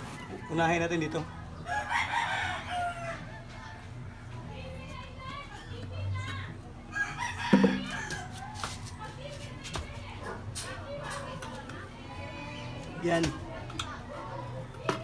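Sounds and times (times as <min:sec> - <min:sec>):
rooster crowing: 0:01.6 - 0:03.8, 0:06.9 - 0:08.7.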